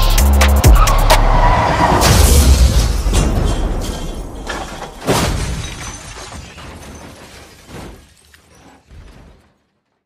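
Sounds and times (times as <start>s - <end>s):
trap beat: 0.0s - 1.4s
glass shattering: 2.0s - 10.0s.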